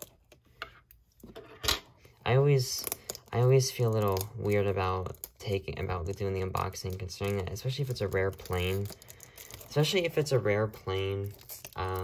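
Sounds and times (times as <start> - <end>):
plastic crackle: 2.4 - 12.0
plastic shrink-wrap crinkling: 2.4 - 12.0.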